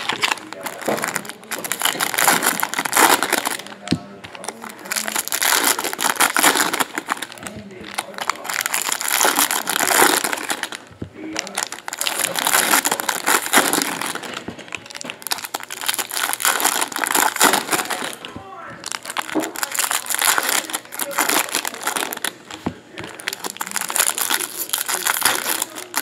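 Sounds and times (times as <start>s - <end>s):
foil wrappers crinkling: 0.0s - 26.0s.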